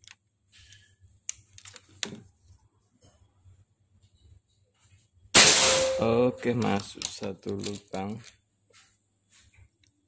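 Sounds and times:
air rifle shot: 5.4 - 6.1.

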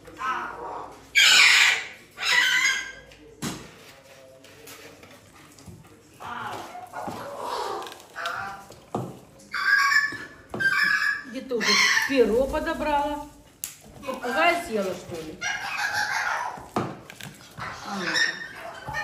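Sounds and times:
parrots squawking: 0.0 - 3.0, 6.2 - 8.8, 9.5 - 12.4, 15.4 - 19.0.

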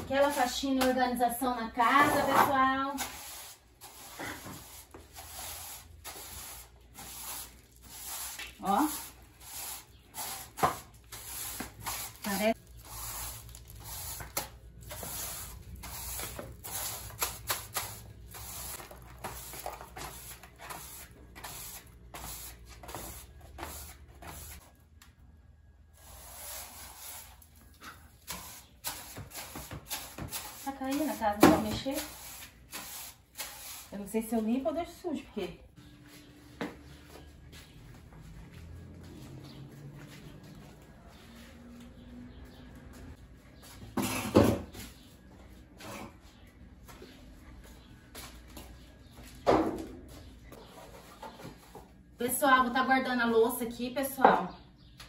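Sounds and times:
broom sweeping cement floor: 0.0 - 1.0, 1.8 - 24.7, 26.0 - 34.7.

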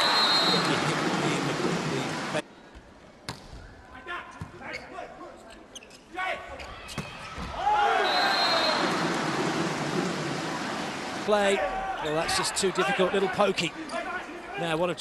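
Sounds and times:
crowd cheering and shouting: 0.0 - 1.4, 7.4 - 13.5.

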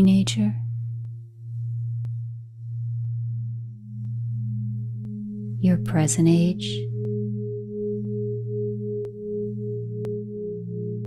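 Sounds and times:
low electronic drone tone: 0.0 - 11.0.

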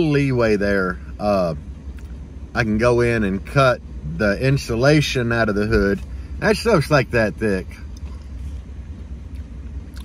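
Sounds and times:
low rumble in vehicle cabin: 0.0 - 10.0.

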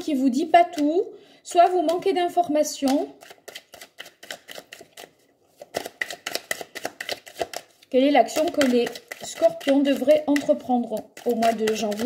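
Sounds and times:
cards being shuffled: 2.8 - 12.0.

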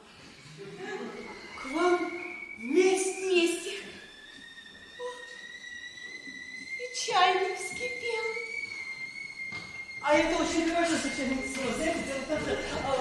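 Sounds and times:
high whistle-like tone: 0.4 - 13.0.

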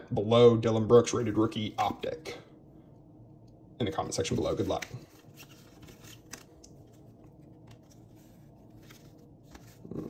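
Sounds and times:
trading cards flipped by hand: 4.3 - 10.0.

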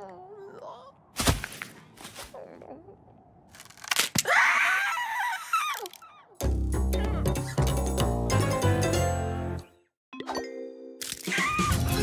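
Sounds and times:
cartoon bird screaming: 11.2 - 11.9.

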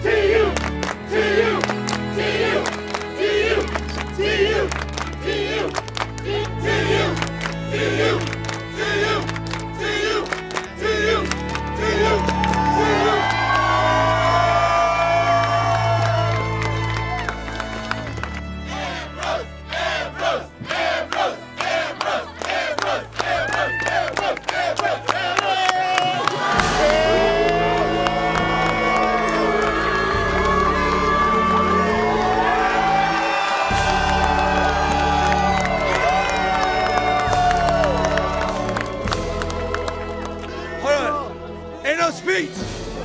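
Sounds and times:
crowd cheering and shouting: 6.4 - 41.5
background music with bass line: 26.4 - 43.0.

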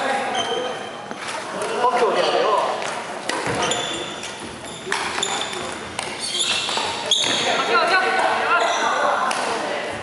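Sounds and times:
shoes squeaking on court: 0.2 - 1.5, 2.9 - 7.7, 8.6 - 9.0.

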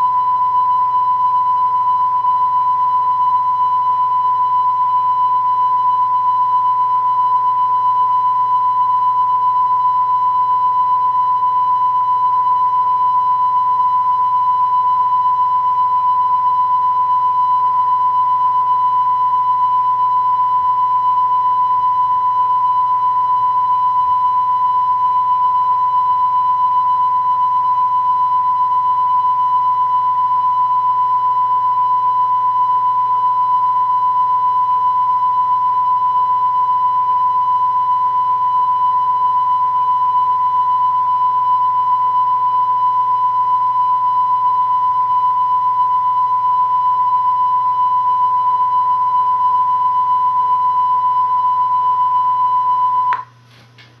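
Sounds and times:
high-pitched electronic test tone: 0.0 - 53.4.

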